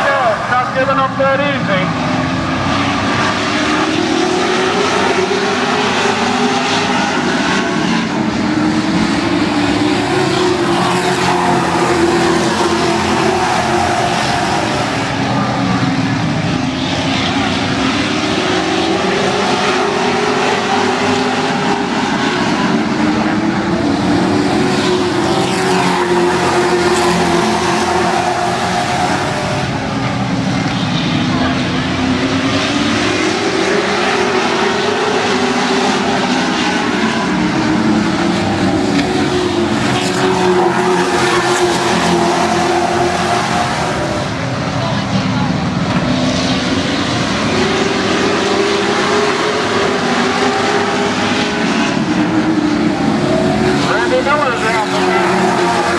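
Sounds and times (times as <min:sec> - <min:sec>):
race car engines roaring: 0:00.0 - 0:55.9.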